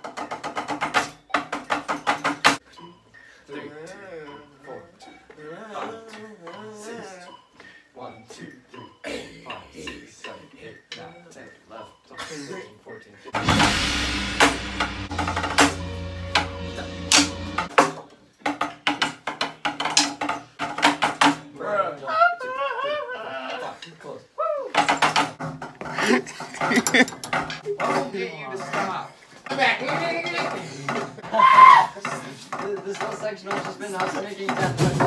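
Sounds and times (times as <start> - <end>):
loud music: 13.4 - 18.0
drumsticks tapping practice pads: 15.5 - 21.4.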